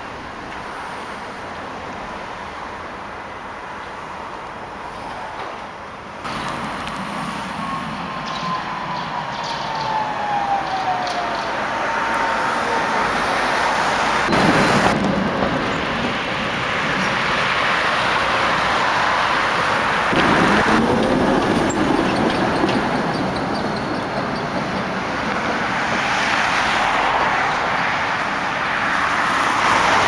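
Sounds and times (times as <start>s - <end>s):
wheels rumbling on rails: 0.0s - 30.0s
tram motors whining: 6.3s - 17.0s.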